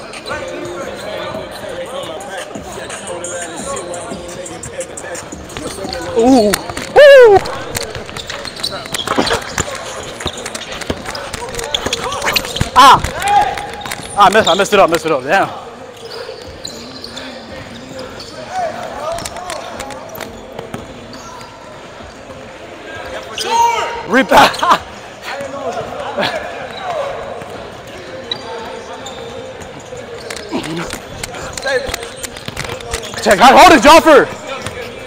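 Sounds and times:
players calling out: 0.2s - 21.3s, 23.0s - 35.0s
loud shout: 6.2s - 7.7s.

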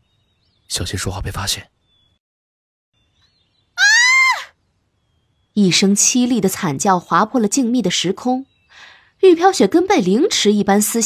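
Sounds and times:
person screaming in pain: 3.8s - 4.4s.

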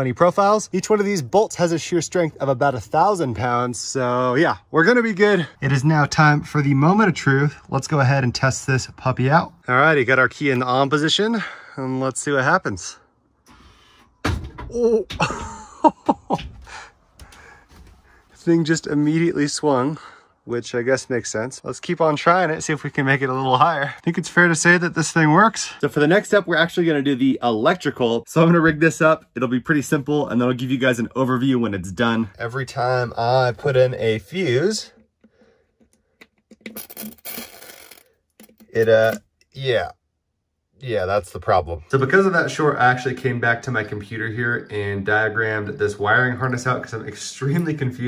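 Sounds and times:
laughter: 15.2s - 16.4s.

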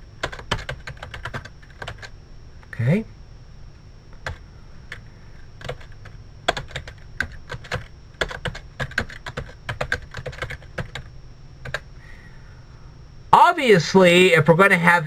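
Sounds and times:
typing on computer keyboard: 0.2s - 2.1s, 5.6s - 11.8s.

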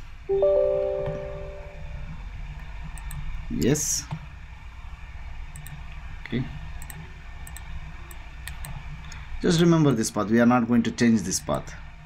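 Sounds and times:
steady low hum: 0.0s - 12.0s
computer mouse clicks: 2.6s - 4.2s, 5.5s - 5.9s, 6.8s - 9.2s.

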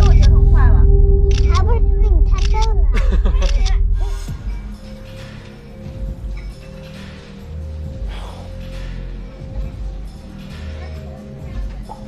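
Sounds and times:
people talking: 0.0s - 4.6s
low hum: 0.0s - 6.6s.

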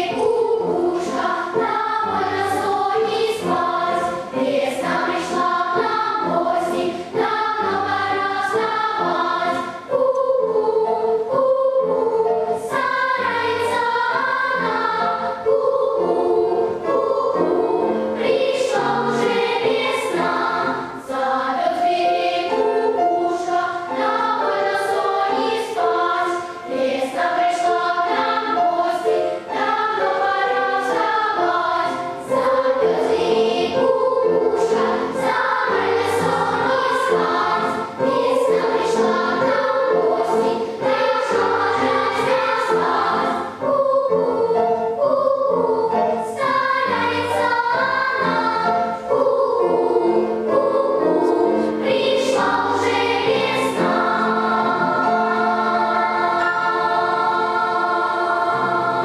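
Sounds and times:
children's choir singing: 0.0s - 59.0s.

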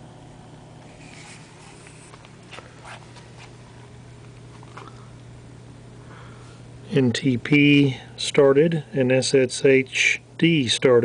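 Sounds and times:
low room hum: 0.0s - 11.0s
soft clicks and rustles: 0.8s - 3.6s.

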